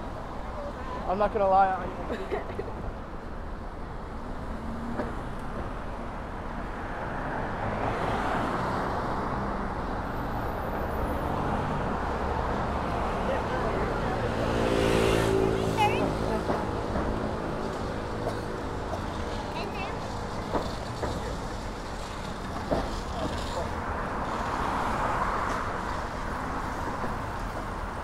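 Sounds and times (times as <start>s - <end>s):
passing cars road noise: 0.0s - 28.0s.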